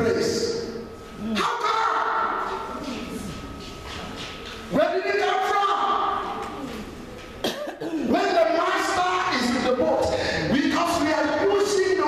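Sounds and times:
man speaking into microphone: 0.0 - 2.5, 4.7 - 6.4, 8.0 - 12.0
man coughing into microphone: 7.4 - 8.2.

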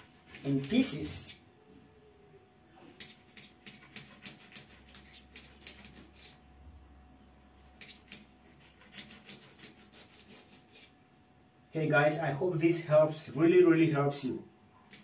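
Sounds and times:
knife ticking against tile: 3.0 - 6.0.

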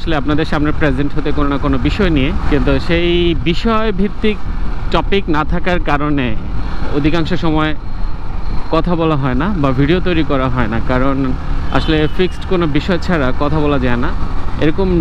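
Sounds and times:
man talking: 0.0 - 7.8, 8.7 - 15.0
motorcycle engine rumble: 0.0 - 15.0.

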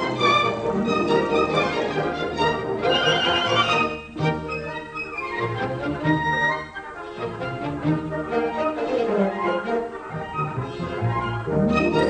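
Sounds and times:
orchestral music with bowed strings: 0.0 - 12.0.

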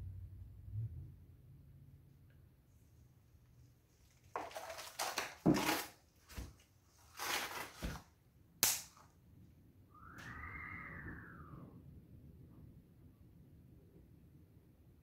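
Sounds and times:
plastic cup crinkling: 4.0 - 8.1.

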